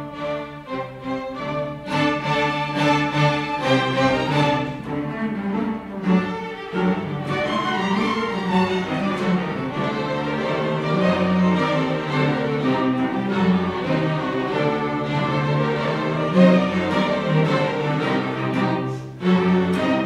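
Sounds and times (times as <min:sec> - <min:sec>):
string orchestra playing: 0:00.0 - 0:20.0.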